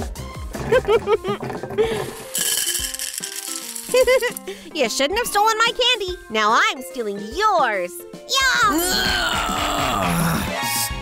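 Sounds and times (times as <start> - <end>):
background music: 0.0 - 11.0
candies rattling down plastic pipe: 0.6 - 4.5.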